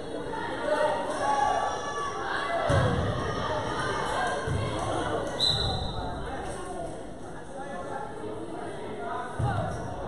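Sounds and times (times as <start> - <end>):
chatter of spectators: 0.0 - 10.0.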